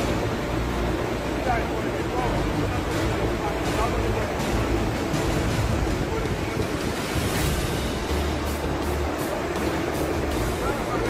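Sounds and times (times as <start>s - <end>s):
floodwater rushing: 0.0s - 11.0s
wind buffeting microphone: 5.1s - 8.2s.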